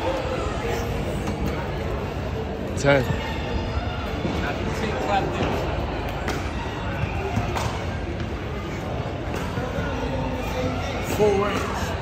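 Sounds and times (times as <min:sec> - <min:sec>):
crowd noise hum: 0:00.0 - 0:12.0.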